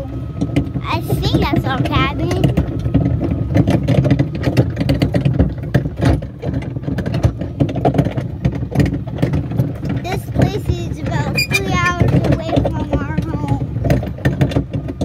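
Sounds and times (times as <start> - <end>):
lawn mower engine running: 0.0 - 15.0
plastic barrels rattling and knocking: 0.0 - 15.0.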